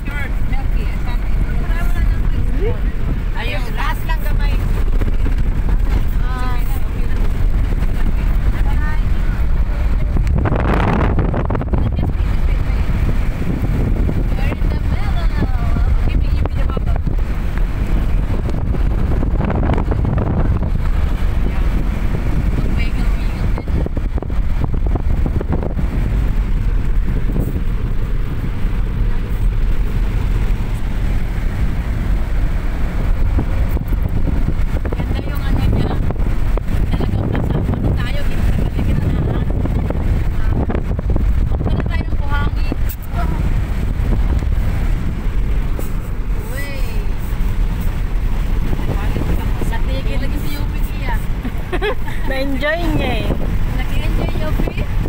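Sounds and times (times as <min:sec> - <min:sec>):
car driving over sand: 0:00.0 - 0:55.0.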